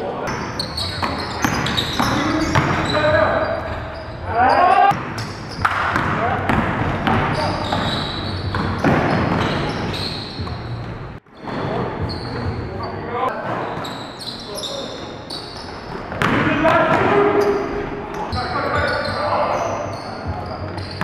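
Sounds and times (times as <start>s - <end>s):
sneakers squeaking on court: 0.2s - 21.0s
basketball bouncing: 5.0s - 10.6s, 16.0s - 17.1s.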